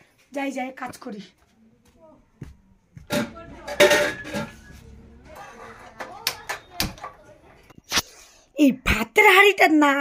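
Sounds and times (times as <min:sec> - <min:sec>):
metal cooking pots clanking: 0:03.1 - 0:04.7.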